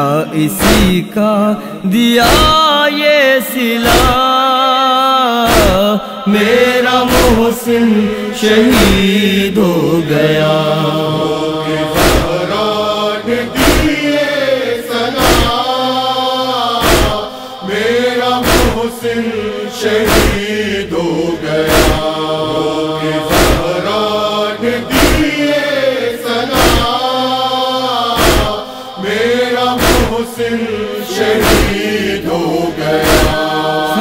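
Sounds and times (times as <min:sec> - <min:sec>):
chest-beating slaps: 0:00.6 - 0:01.0, 0:03.9 - 0:04.2, 0:05.5 - 0:05.9, 0:07.1 - 0:07.5, 0:08.7 - 0:09.1, 0:11.9 - 0:12.6, 0:13.5 - 0:14.2, 0:15.1 - 0:15.7, 0:16.8 - 0:17.4, 0:18.2 - 0:18.9, 0:20.0 - 0:20.6, 0:21.6 - 0:22.2, 0:23.2 - 0:23.9, 0:24.9 - 0:25.5, 0:26.5 - 0:27.1, 0:28.1 - 0:28.7, 0:29.8 - 0:30.3, 0:31.2 - 0:31.9, 0:32.9 - 0:33.5
voices chanting slowly: 0:03.5 - 0:34.0.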